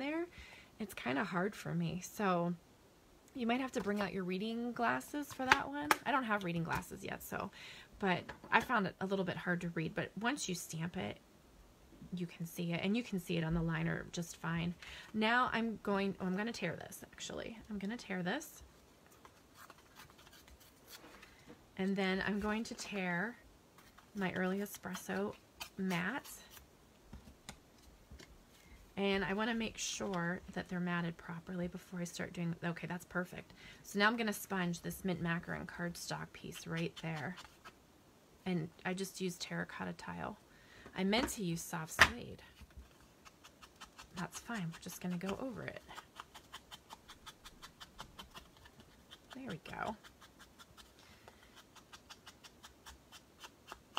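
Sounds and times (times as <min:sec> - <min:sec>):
paper tearing: 0:19.5 - 0:21.2.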